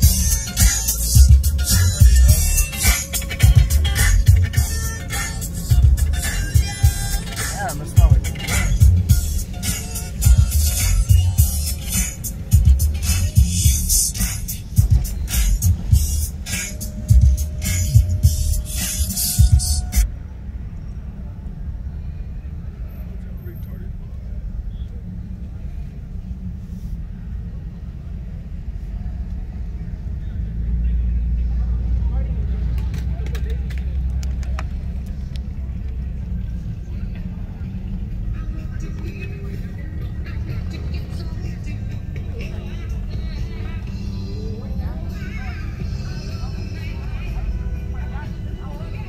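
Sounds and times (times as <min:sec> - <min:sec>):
music: 0:00.0 - 0:20.1, 0:37.9 - 0:49.0
people's voices: 0:00.0 - 0:49.0
vehicles rumbling: 0:00.0 - 0:49.0.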